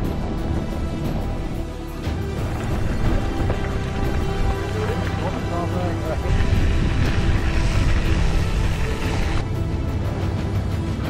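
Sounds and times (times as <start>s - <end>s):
bike rolling over bumpy ground: 0.0s - 9.4s
rushing noise: 0.0s - 9.7s
background music: 0.0s - 11.0s.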